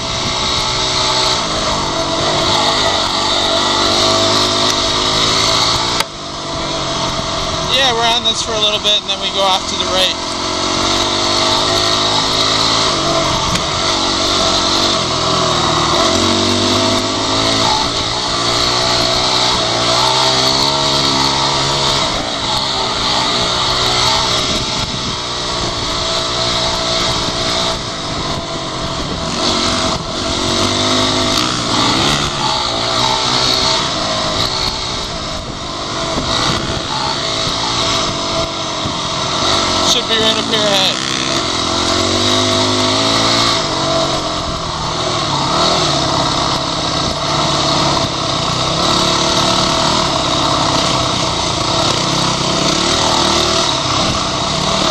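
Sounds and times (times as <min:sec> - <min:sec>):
dirt bike engine revving: 0:00.0 - 0:54.9.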